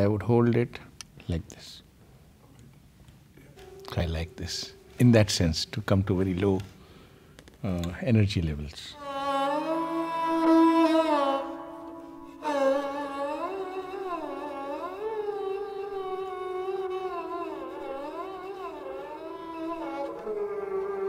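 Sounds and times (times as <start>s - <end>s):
bowed string instrument sliding notes: 3.5s - 5.6s, 9.0s - 21.0s.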